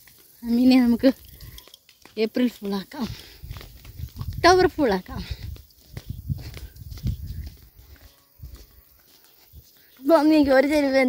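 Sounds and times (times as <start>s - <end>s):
footsteps on paved road: 0.0s - 11.0s.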